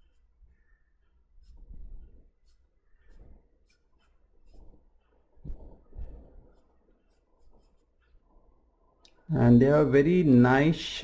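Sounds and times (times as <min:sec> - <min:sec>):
pencil scratching on paper: 0:00.0 - 0:08.9.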